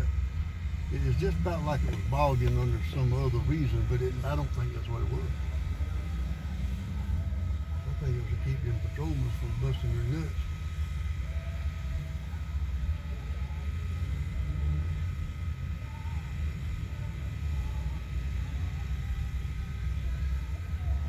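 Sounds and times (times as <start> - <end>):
vehicle engine idling: 0.0 - 21.0.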